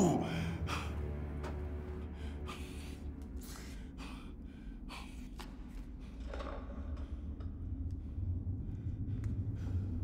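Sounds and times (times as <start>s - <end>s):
man breathing hard: 2.0s - 6.2s.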